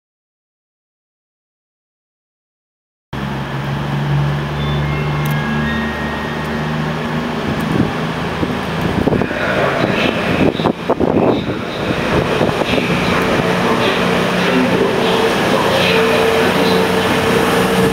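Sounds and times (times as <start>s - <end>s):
diesel train engines running: 3.2s - 17.9s
train knocking: 3.2s - 17.9s.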